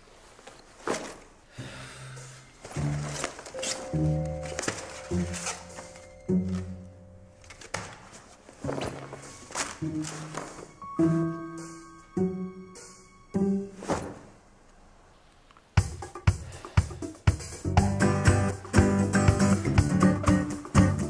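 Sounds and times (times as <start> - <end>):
crisp rustles and knocks: 0.0 - 1.5, 2.6 - 6.8, 7.4 - 10.8, 13.8 - 14.4.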